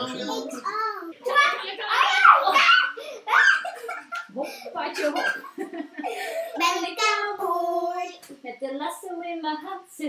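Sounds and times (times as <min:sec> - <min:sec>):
young children laughing: 0:00.0 - 0:06.8.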